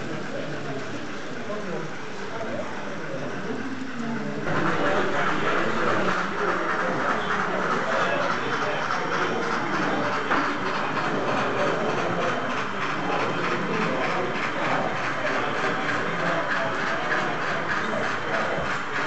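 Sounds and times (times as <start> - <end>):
model train wheels clicking: 0.0 - 19.0
murmur of voices: 0.0 - 19.0.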